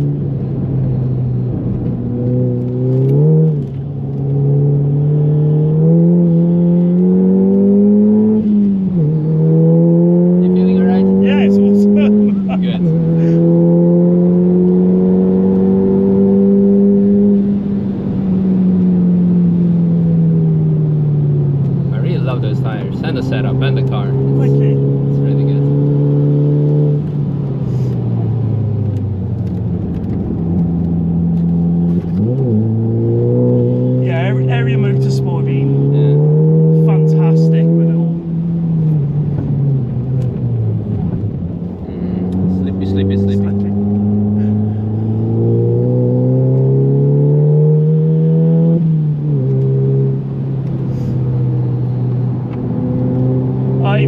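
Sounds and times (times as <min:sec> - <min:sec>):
car engine accelerating: 0:00.0 - 0:54.0.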